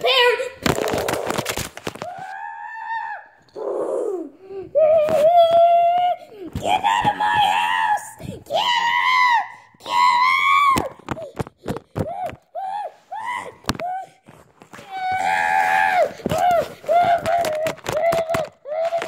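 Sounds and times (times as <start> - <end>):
children shrieking and screaming: 2.1 - 11.0, 14.9 - 19.0.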